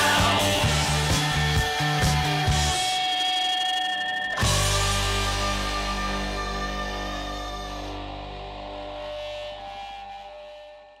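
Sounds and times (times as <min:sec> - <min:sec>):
held music chord ringing: 0:00.0 - 0:10.9.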